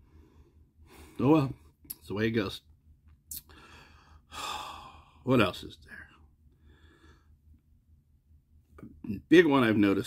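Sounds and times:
man sighing: 3.5 - 5.2.

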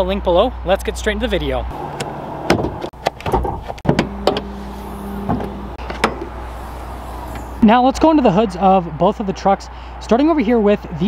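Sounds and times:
hood latch clicks and clunks: 2.0 - 4.6, 5.2 - 6.4
hood release lever pulled: 2.0 - 4.6
low steady hum: 3.9 - 9.0.

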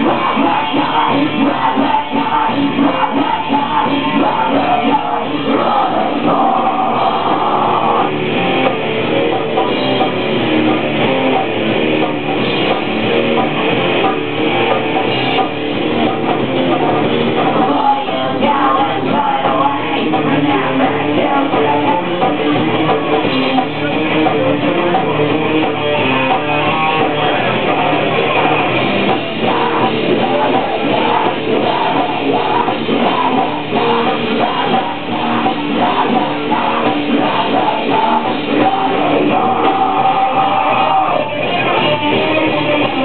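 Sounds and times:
drums steady beat: 0.0 - 43.0
loud electric guitar riffs: 0.0 - 43.0
punk rock band playing: 0.0 - 43.0.

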